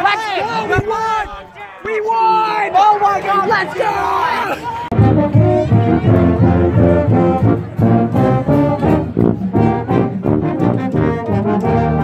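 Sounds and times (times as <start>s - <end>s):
marching band brass playing: 4.9s - 12.0s.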